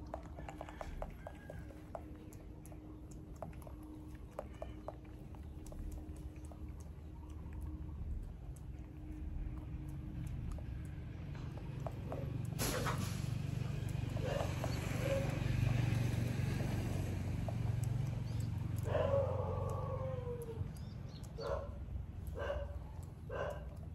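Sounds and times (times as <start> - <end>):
steady low hum: 0.0 - 23.9
animal yelps: 14.2 - 15.5, 18.8 - 20.8.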